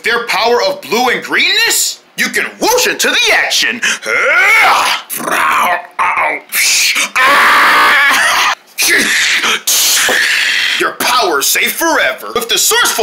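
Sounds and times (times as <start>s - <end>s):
person making vocal sound effects: 3.8s - 7.2s.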